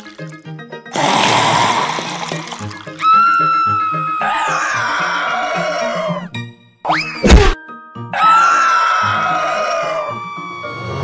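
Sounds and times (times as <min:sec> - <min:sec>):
cartoon background music: 0:00.0 - 0:11.0
long high held cries: 0:03.0 - 0:06.3, 0:08.2 - 0:11.0.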